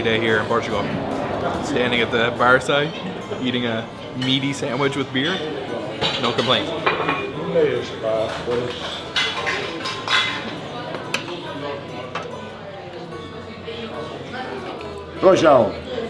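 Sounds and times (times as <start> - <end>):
dishes and glasses clinking: 0.2 - 12.6.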